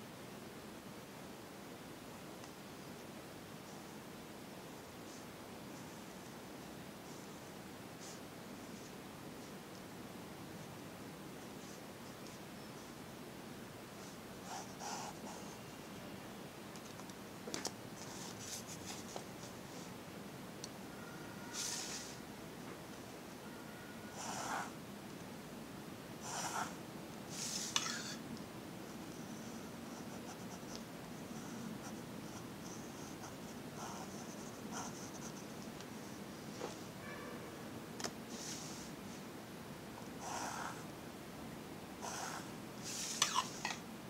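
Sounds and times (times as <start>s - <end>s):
pen scratching on paper: 14.0s - 15.6s, 26.3s - 26.8s, 29.0s - 35.6s.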